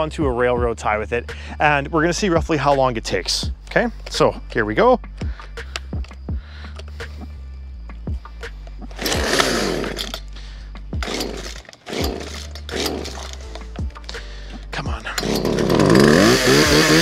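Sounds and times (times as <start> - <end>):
starter cord yanks: 8.8 - 10.4, 11.0 - 17.0
chainsaw engine coughing: 9.0 - 13.5, 14.5 - 17.0.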